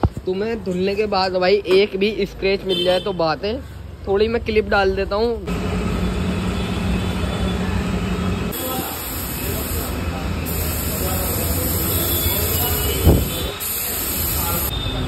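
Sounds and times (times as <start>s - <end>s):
pressure washer water jet hiss: 8.5s - 14.7s.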